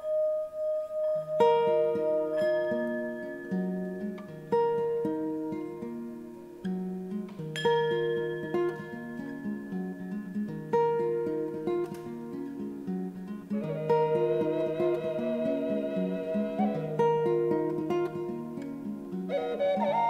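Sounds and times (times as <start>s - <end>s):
classical guitar fingerstyle: 0.0s - 20.0s
vessel flute held notes: 13.5s - 18.6s, 19.3s - 20.0s.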